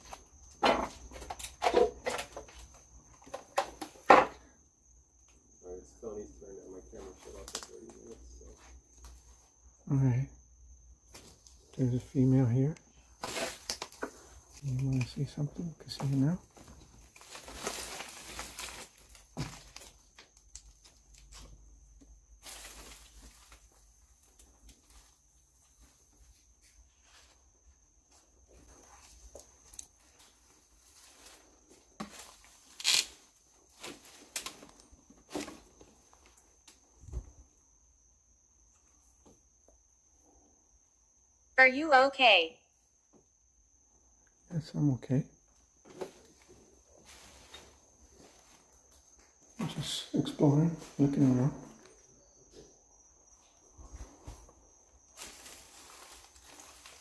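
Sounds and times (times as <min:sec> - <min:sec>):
crunching and rustling: 0:13.0 - 0:27.4, 0:28.2 - 0:36.9, 0:45.8 - 0:49.2, 0:53.9 - 0:57.0.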